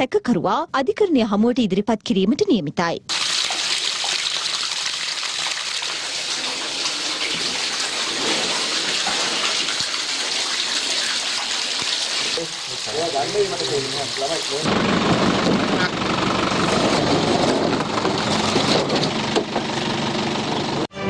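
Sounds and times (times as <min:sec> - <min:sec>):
water gushing from hoses onto floor: 0:03.1 - 0:15.5.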